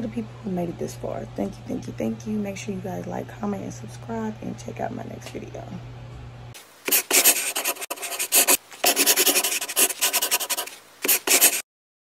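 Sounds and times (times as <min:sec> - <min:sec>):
pen scratching on paper: 0:06.9 - 0:11.7.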